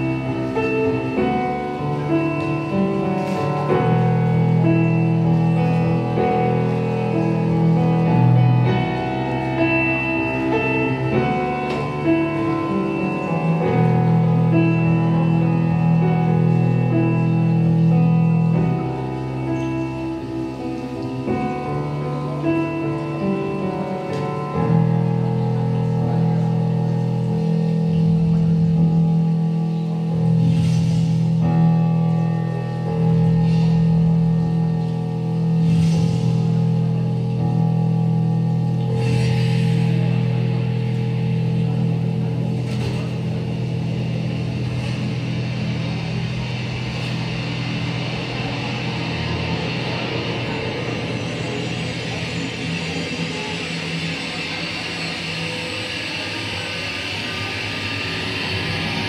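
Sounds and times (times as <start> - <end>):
shimmering cymbal wash: 0.0 - 59.0.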